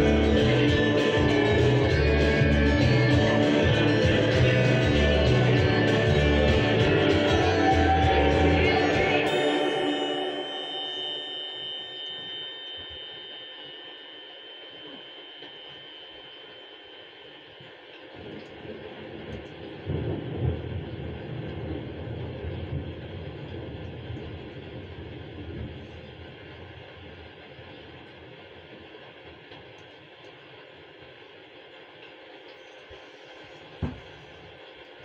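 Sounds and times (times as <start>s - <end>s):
low rumbling noise: 0.0s - 10.6s, 18.2s - 29.5s
held note of a song: 0.0s - 13.4s.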